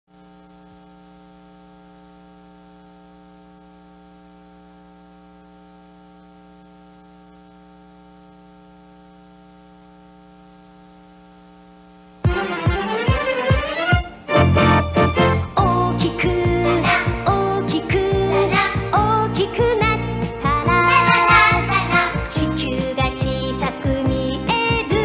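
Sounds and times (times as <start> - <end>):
electrical hum: 0.1 - 25.0.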